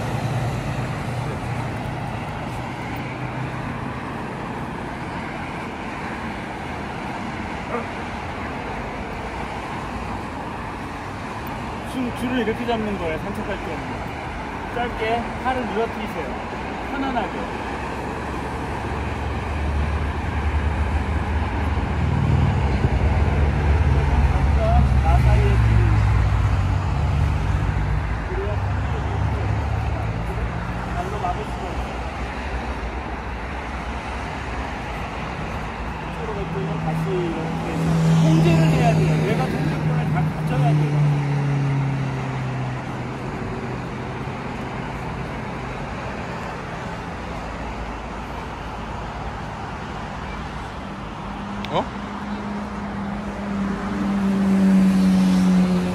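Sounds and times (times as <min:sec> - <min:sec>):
motor vehicles passing: 0:00.0 - 0:55.9.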